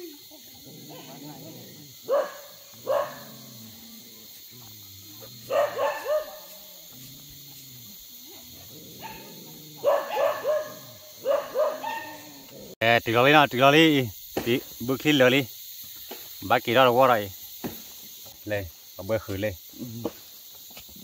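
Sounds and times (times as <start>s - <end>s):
dog barking: 2.0s - 3.6s, 5.2s - 7.0s, 8.3s - 12.5s.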